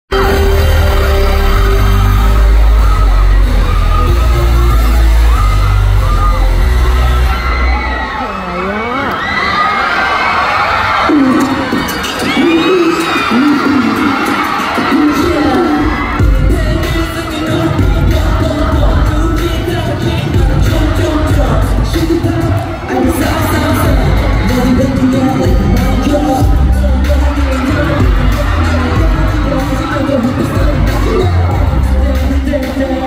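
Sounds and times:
bass-heavy music over sound system: 0:00.1 - 0:09.0, 0:10.8 - 0:33.0
crowd screaming and cheering: 0:00.1 - 0:33.0.

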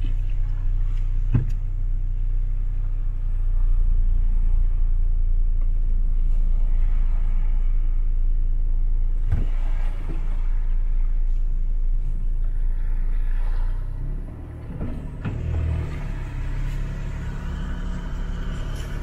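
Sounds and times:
clunks: 0:00.0 - 0:01.9, 0:14.0 - 0:17.3
low engine rumble: 0:00.0 - 0:19.0.

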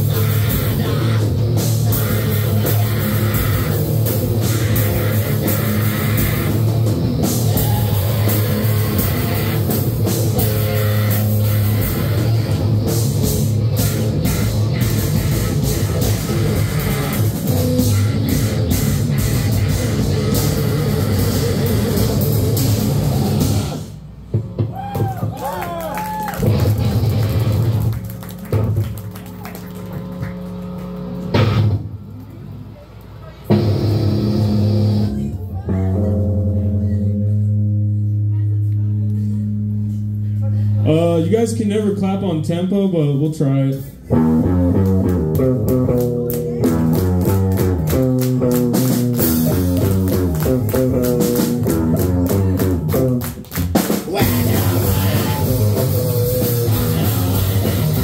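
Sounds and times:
distorted guitar: 0:00.0 - 0:24.8, 0:26.4 - 0:28.8, 0:33.5 - 0:58.0
fast drums: 0:00.0 - 0:31.9, 0:44.3 - 0:58.0
bass guitar: 0:00.0 - 0:58.0
shouted vocals: 0:07.4 - 0:09.0, 0:24.7 - 0:26.6, 0:54.0 - 0:57.7
voices: 0:54.0 - 0:57.8.

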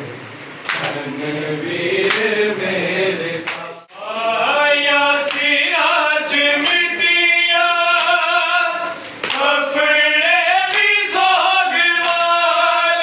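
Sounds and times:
men chanting a lament: 0:00.8 - 0:13.0.

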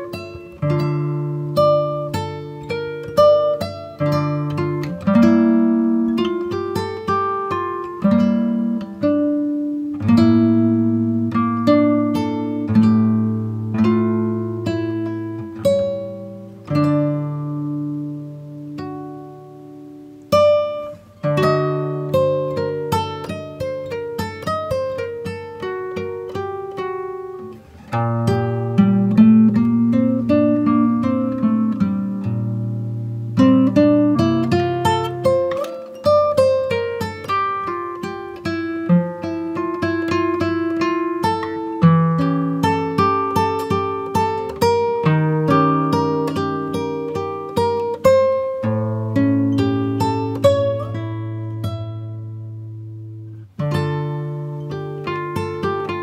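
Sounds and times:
solo acoustic guitar picking: 0:00.0 - 0:56.0.

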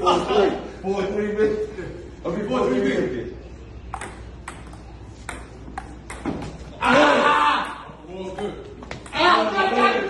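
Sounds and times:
table tennis ball hitting paddles: 0:03.9 - 0:06.7.

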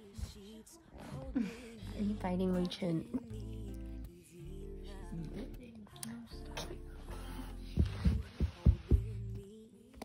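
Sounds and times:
faint background music: 0:00.0 - 0:10.0
muffled thumps on microphone: 0:07.8 - 0:09.2.

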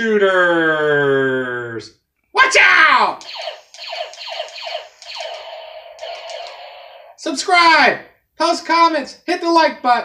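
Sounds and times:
electronic laser zaps: 0:03.2 - 0:07.2.

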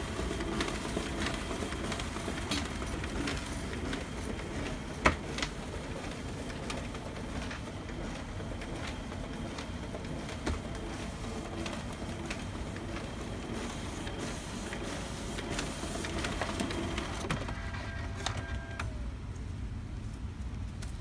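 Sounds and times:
paper sheets clicking through: 0:00.0 - 0:18.9
scanner feed rollers whirring: 0:00.0 - 0:19.0.

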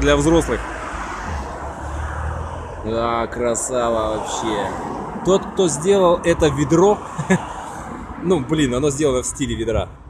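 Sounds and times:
distant road traffic rumble: 0:00.0 - 0:10.0.

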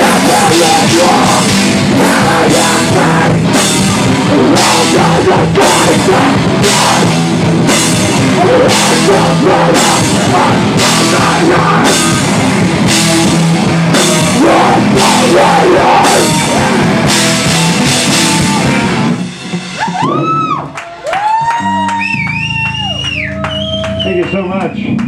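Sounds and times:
guitar feedback tones: 0:00.0 - 0:20.6
heavy metal band playing: 0:00.0 - 0:25.0.

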